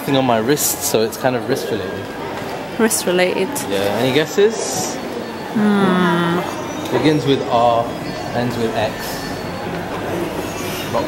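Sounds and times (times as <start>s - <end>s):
shopping mall hum and hiss: 0.0s - 11.0s.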